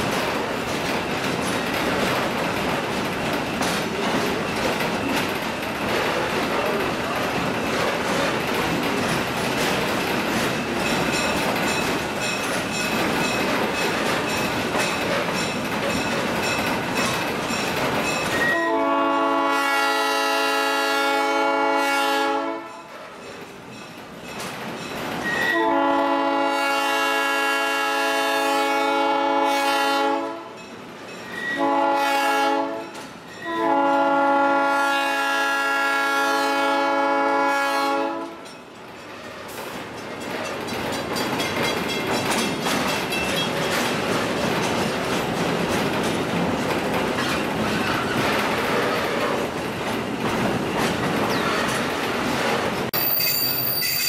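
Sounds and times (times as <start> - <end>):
train running along rails: 0.0 - 54.0
locomotive air horn: 18.4 - 22.9, 25.3 - 30.6, 31.4 - 38.4.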